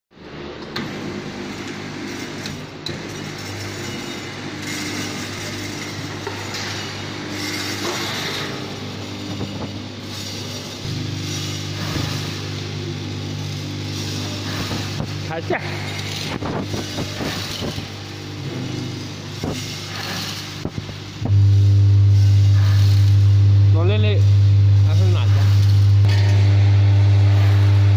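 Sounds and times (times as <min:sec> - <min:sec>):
deeper machine hum: 0:00.3 - 0:27.9
packing machine humming: 0:00.5 - 0:27.9.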